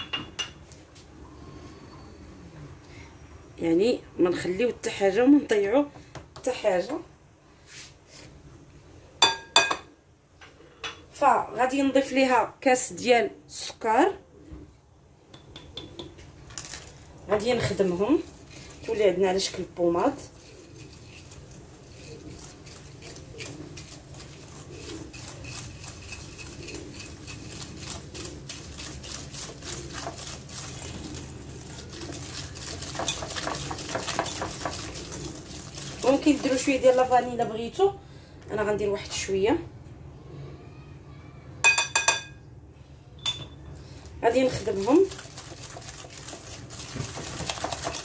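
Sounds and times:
sugar pouring into bowl: 0:17.4 - 0:37.2, 0:44.5 - 0:48.0
whisk clinking against glass bowl: 0:32.0 - 0:36.7
glass clinking on glass: 0:41.6 - 0:42.4, 0:43.2 - 0:43.6.

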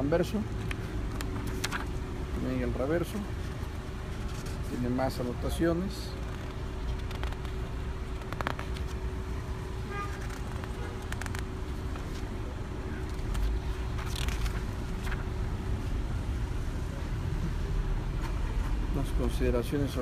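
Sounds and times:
street traffic rumble: 0:00.0 - 0:20.0
paper pages rustling: 0:00.6 - 0:02.4, 0:03.0 - 0:05.3, 0:06.1 - 0:09.1, 0:10.0 - 0:15.4.

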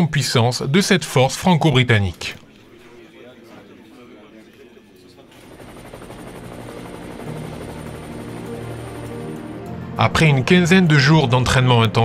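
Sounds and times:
helicopter rotor: 0:05.4 - 0:10.3
music: 0:05.7 - 0:12.0.

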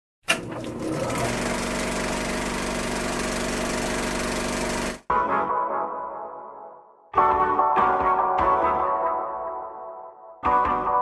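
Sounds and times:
music: 0:05.1 - 0:11.0.

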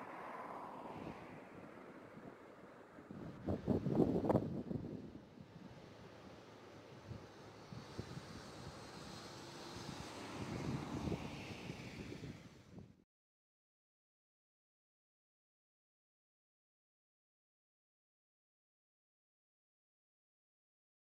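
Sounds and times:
faint steady rush: 0:00.0 - 0:13.0
wind buffeting microphone: 0:00.8 - 0:05.9, 0:07.0 - 0:13.0.

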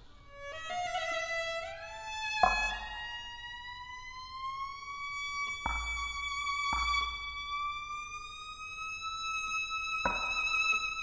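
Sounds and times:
violin long bowed note: 0:00.0 - 0:11.0.

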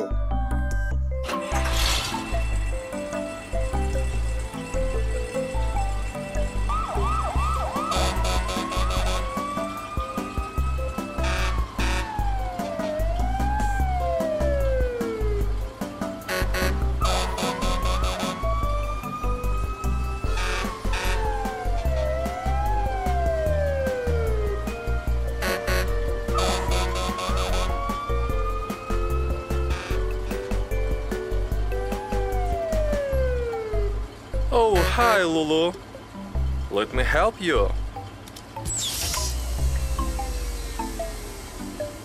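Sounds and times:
cartoon siren wailing: 0:06.7 - 0:15.3, 0:17.0 - 0:24.6, 0:31.8 - 0:33.9.

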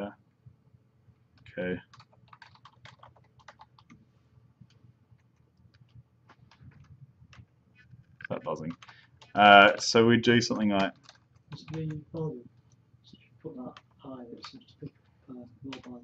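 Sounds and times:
keyboard typing: 0:01.4 - 0:04.0, 0:04.7 - 0:12.8, 0:13.6 - 0:16.0.

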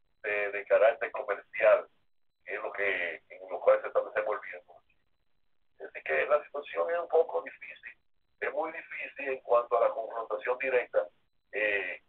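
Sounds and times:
person talking over telephone: 0:00.2 - 0:04.7, 0:05.8 - 0:12.0.

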